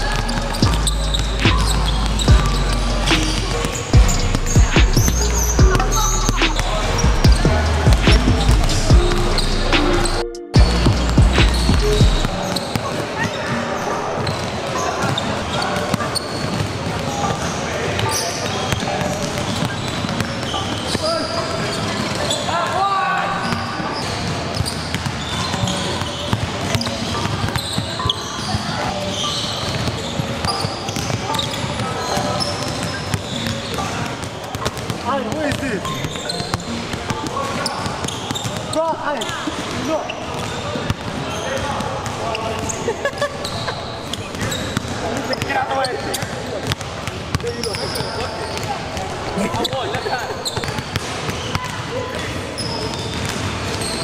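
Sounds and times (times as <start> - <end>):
music with heavy bass beat: 0.0 - 12.4
basketballs bouncing on wooden floor: 0.0 - 13.6, 14.2 - 22.8, 23.4 - 54.0
indistinct chatter of players: 0.0 - 54.0.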